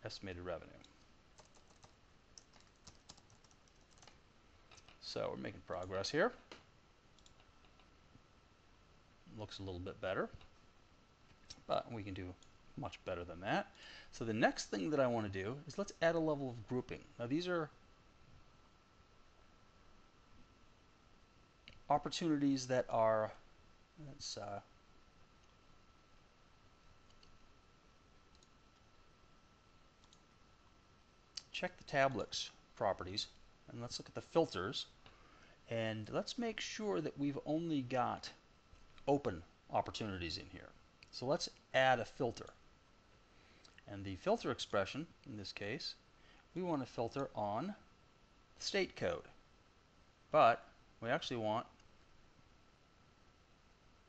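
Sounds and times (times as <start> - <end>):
faint keyboard typing: 0.7 - 8.0, 27.0 - 27.5, 28.2 - 29.0, 30.0 - 30.3
computer mouse clicks: 0.8 - 5.0, 7.2 - 7.9, 27.1 - 27.4, 28.3 - 28.9, 30.0 - 30.2.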